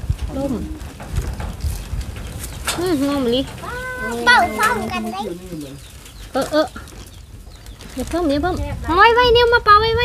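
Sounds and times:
wind buffeting microphone: 0:00.0 - 0:10.0
person speaking: 0:03.6 - 0:05.8.

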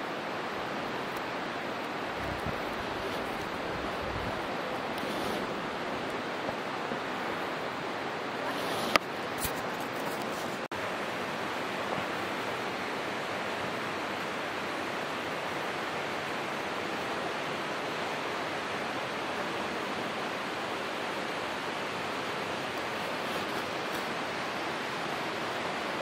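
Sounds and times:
running water rushing: 0:00.0 - 0:26.0.

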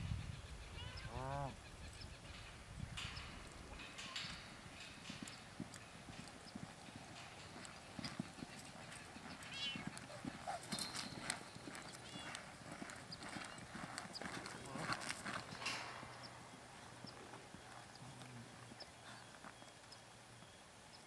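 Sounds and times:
hoofbeats on soft dirt: 0:01.9 - 0:20.6.

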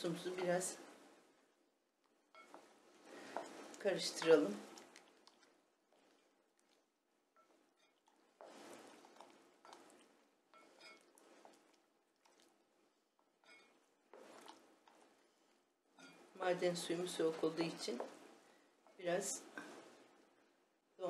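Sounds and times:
spoon stirring sauce in glass bowl: 0:02.0 - 0:16.3.

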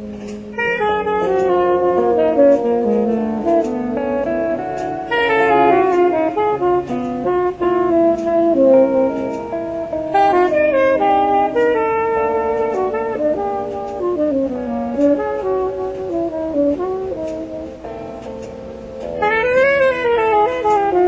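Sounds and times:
electric guitar: 0:00.0 - 0:21.0
saxophones playing: 0:00.0 - 0:21.0.

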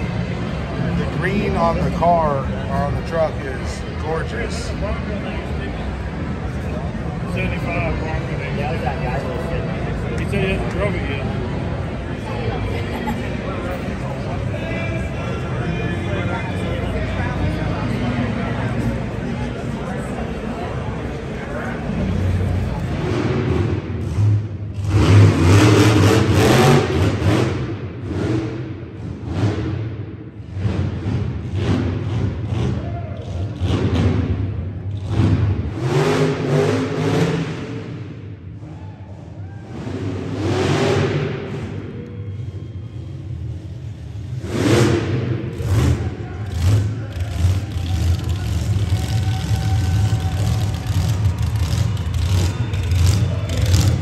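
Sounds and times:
monster truck engine revving: 0:00.0 - 0:54.0.

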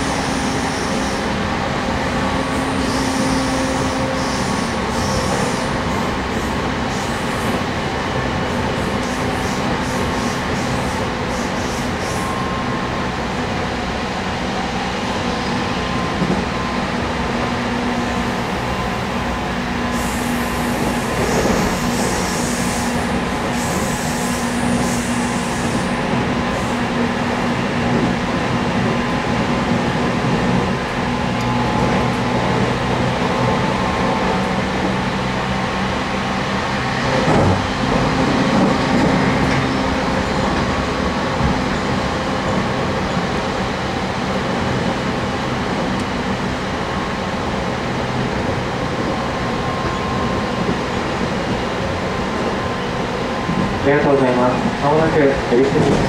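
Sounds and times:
train wheels rumbling: 0:00.0 - 0:56.0.

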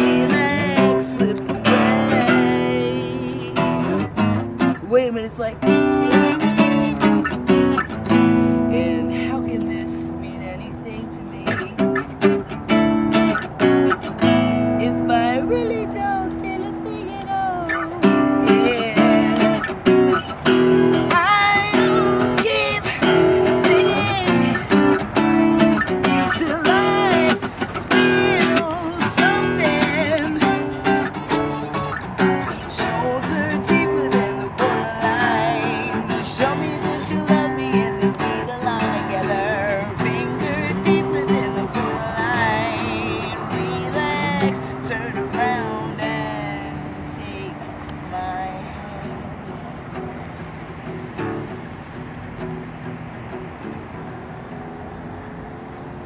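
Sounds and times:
woman singing: 0:00.0 - 0:04.1, 0:04.8 - 0:06.9, 0:08.4 - 0:12.0, 0:14.2 - 0:19.8, 0:21.0 - 0:31.8, 0:32.4 - 0:49.6
acoustic guitar strumming: 0:00.0 - 0:56.0.

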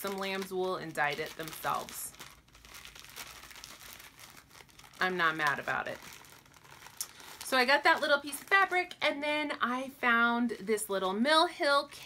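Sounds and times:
crinkling and rustling of items: 0:00.0 - 0:09.0.

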